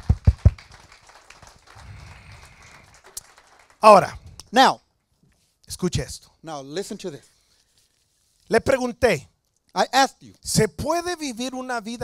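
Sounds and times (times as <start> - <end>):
quick hand claps: 0.0 - 4.0.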